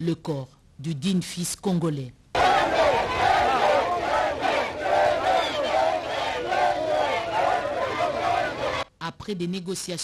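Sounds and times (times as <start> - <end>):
large crowd shouting: 2.4 - 8.9.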